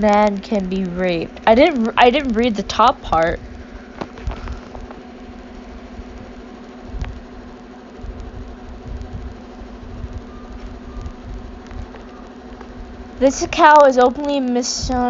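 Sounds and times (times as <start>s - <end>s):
low machine-like hum: 0.0s - 15.0s
uneven rumble: 0.0s - 15.0s.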